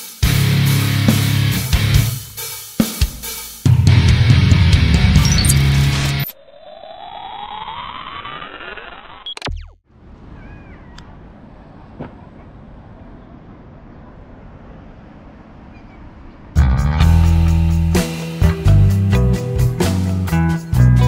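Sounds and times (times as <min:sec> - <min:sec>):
music: 0:00.0 - 0:06.3, 0:16.6 - 0:21.0
rising riser sound effect: 0:05.0 - 0:09.8.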